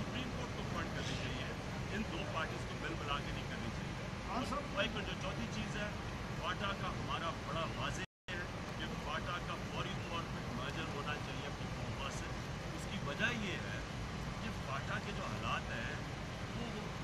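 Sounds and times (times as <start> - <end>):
man speaking into microphones: 0.0 - 16.0.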